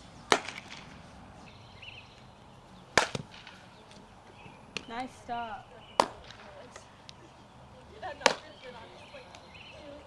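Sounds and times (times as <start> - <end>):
bat cracking on softball: 0.3 - 1.0, 2.9 - 4.0, 6.0 - 6.9, 8.2 - 8.5.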